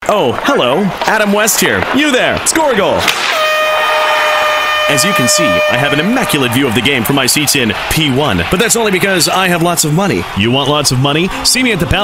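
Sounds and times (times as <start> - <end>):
goal horn blowing: 3.2 - 7.2.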